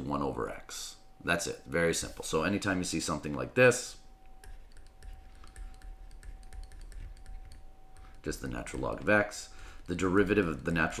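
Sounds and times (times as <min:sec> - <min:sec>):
faint steady tone: 0:00.0 - 0:11.0
stylus tapping on a tablet: 0:04.4 - 0:09.0.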